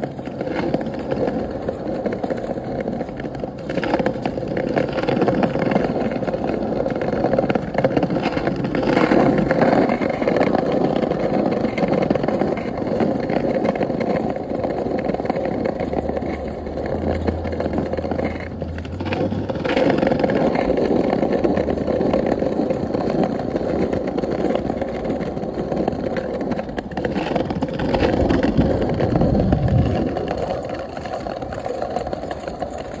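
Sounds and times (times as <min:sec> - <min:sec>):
scooter wheels rolling on pavers: 0:00.0 - 0:33.0
low falling tone: 0:29.0 - 0:30.4.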